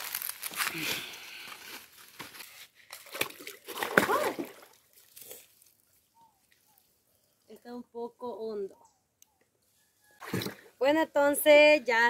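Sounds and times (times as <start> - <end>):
dry leaves crunching: 0.0 - 2.6
water splashing in a stream: 2.9 - 5.8, 10.2 - 10.7.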